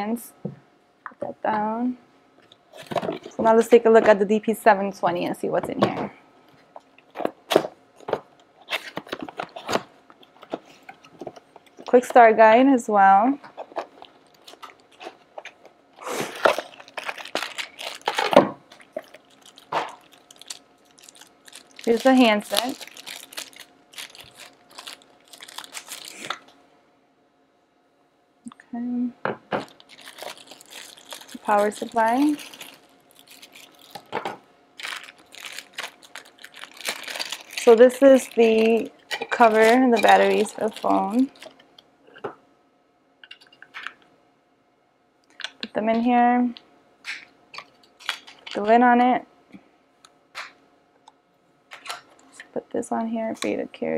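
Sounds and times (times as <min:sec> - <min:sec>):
cardboard and paper crinkling: 0:02.7 - 0:03.6, 0:07.1 - 0:12.0, 0:13.4 - 0:15.6, 0:16.2 - 0:26.5, 0:29.6 - 0:41.6.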